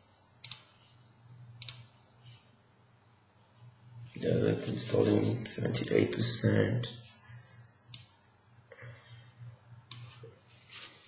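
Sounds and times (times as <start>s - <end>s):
low steady hum: 0.0s - 11.0s
computer mouse clicks: 0.4s - 0.7s, 1.6s - 1.9s, 7.9s - 8.2s, 9.8s - 10.2s.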